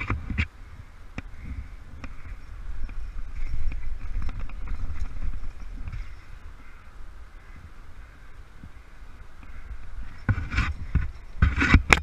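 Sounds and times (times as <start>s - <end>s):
gear scraping and clicking on rock: 1.2s - 6.5s, 9.4s - 12.0s.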